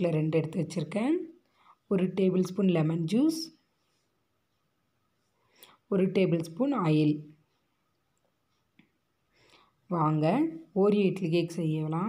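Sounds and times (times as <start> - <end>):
woman speaking: 0.0 - 3.6, 5.9 - 7.4, 9.9 - 12.0.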